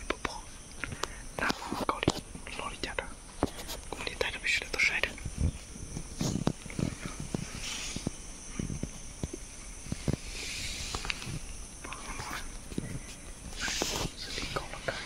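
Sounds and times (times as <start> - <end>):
person whispering: 0.0 - 0.6, 1.4 - 3.2, 3.8 - 5.2, 11.8 - 12.5, 13.5 - 15.0
twigs and leaves clicking and rustling: 5.1 - 15.0.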